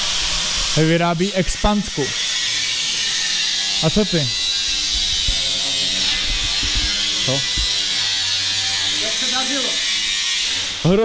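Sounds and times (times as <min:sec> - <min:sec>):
small electric motor buzzing: 0:00.0 - 0:11.0
person speaking: 0:03.8 - 0:07.8.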